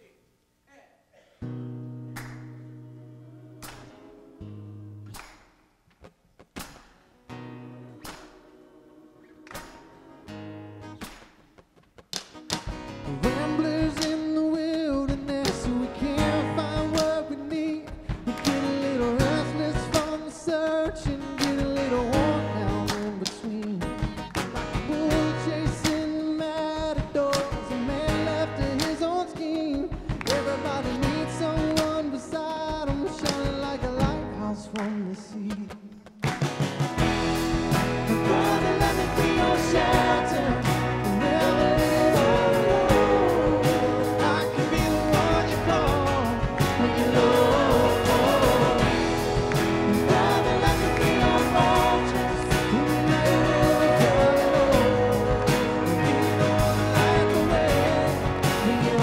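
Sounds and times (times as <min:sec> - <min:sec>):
live worship band playing: 0:01.5 - 0:05.3, 0:06.6 - 0:11.4, 0:12.4 - 0:59.0.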